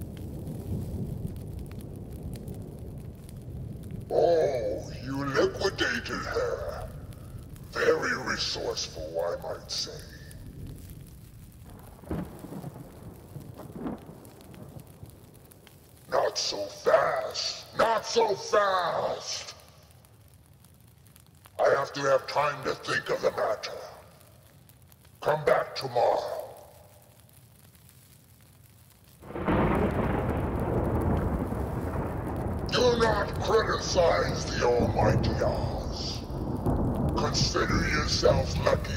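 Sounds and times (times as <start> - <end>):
rumbling crackling burst: 0.0 - 38.9.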